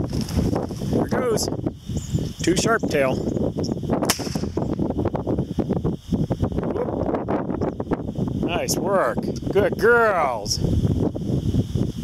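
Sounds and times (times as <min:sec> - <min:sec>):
rustling through grass: 0:00.0 - 0:01.1
wind on microphone: 0:00.0 - 0:12.0
pistol shot crack: 0:04.0 - 0:04.6.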